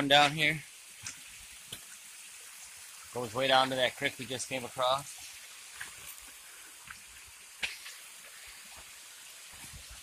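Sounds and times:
small waterfall trickling: 0.0s - 10.0s.

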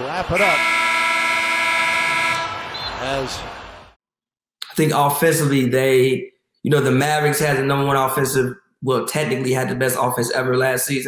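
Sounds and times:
arena horn blaring: 0.2s - 3.4s.

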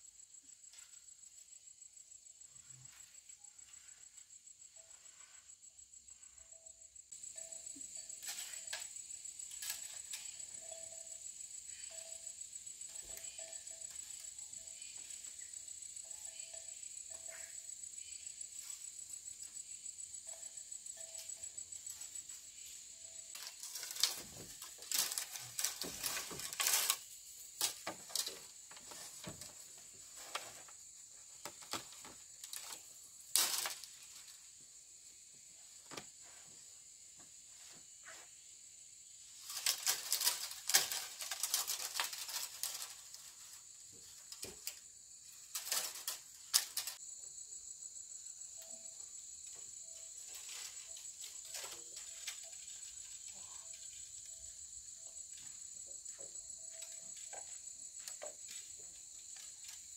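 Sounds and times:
insects trilling: 0.0s - 59.9s
bamboo poles knocking and clattering: 7.4s - 11.0s, 23.3s - 34.4s, 35.8s - 36.5s, 39.3s - 47.0s, 49.5s - 54.6s, 55.3s - 59.9s.

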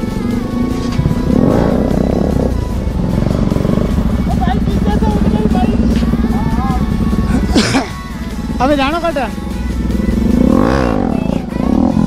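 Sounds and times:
motorcycle engine running: 0.0s - 12.0s
song with singing: 0.0s - 12.0s.

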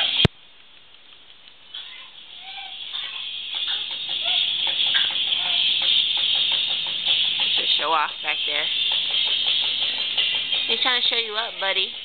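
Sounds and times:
baby cooing: 1.7s - 6.2s.

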